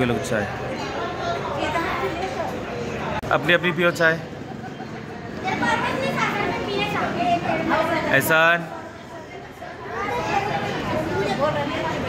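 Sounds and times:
children talking and chattering: 0.0 - 12.0.

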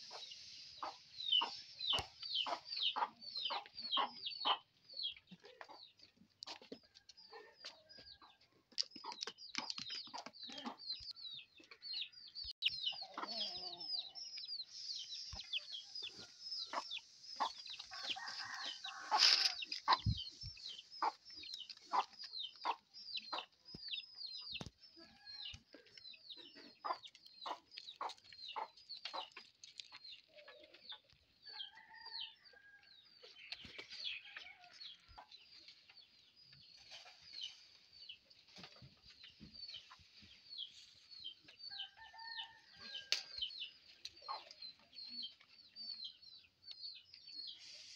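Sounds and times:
hen clucking: 0.0 - 24.7, 25.5 - 32.0, 43.6 - 45.4
chicks peeping: 0.0 - 32.3, 32.9 - 47.9.

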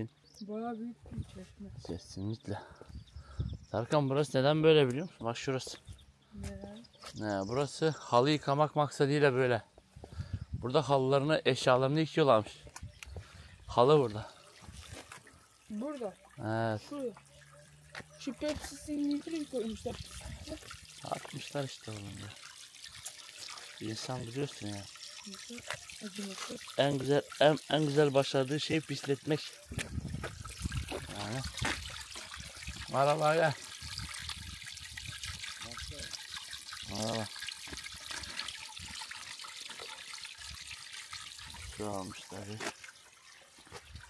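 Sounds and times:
water trickling in a fountain: 0.0 - 44.0
man talking: 1.9 - 2.8, 3.7 - 5.8, 7.2 - 9.7, 10.6 - 12.7, 13.7 - 14.4, 16.4 - 16.9, 21.0 - 22.4, 23.8 - 24.9, 26.8 - 29.6, 31.0 - 31.6, 32.8 - 33.6, 36.8 - 37.3, 41.7 - 42.7.

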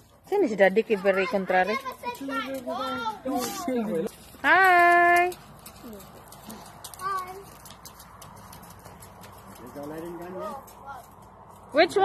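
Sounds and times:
child talking: 0.9 - 3.9, 7.0 - 7.5.

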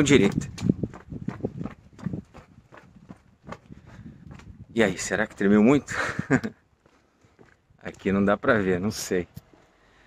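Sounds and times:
jogging footsteps on pavement: 0.0 - 10.0.

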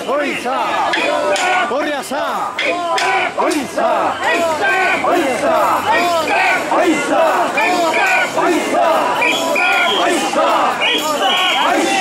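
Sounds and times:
men shouting a chant together: 0.0 - 12.0.

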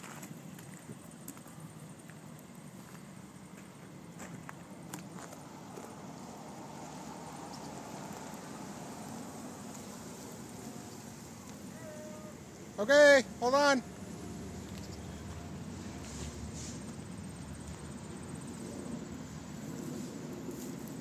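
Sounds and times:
footsteps on gravel: 0.0 - 6.0
low steady rumble: 0.2 - 21.0.

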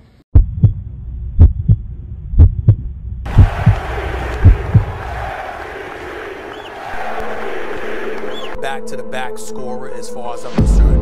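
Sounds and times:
heartbeat double thumps: 0.4 - 5.1.

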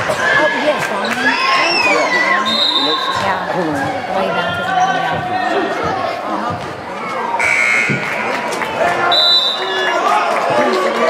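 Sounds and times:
crowd chatter: 0.0 - 11.0
referee's whistle blast: 7.4 - 8.0, 9.1 - 9.8
scoreboard horn: 7.4 - 8.1.

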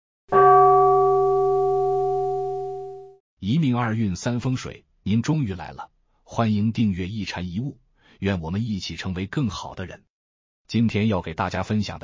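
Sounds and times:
small metal bell ringing: 0.3 - 3.1.

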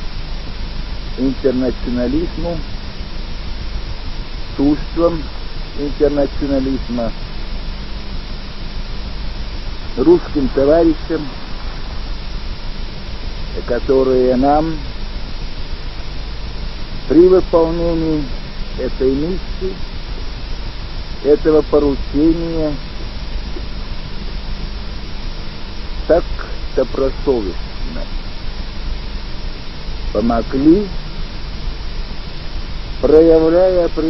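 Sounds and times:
low hum: 0.0 - 34.0
tape hiss: 0.0 - 34.0.

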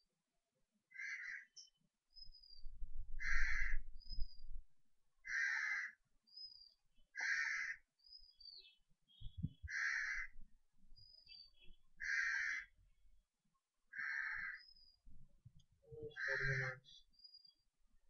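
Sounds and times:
bird harsh calls: 3.2 - 3.8, 11.4 - 12.7, 14.0 - 14.8, 16.1 - 17.0.

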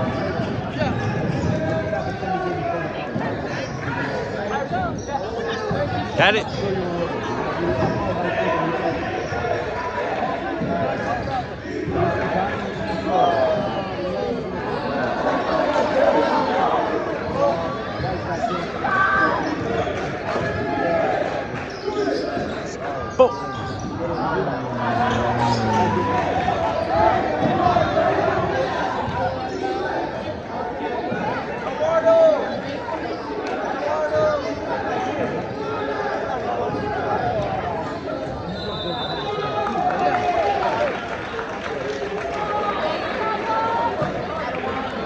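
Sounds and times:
voices in echoing hall: 0.0 - 45.0.

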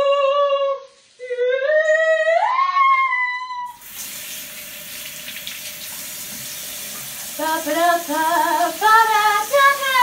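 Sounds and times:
faucet running into sink: 3.8 - 10.0.

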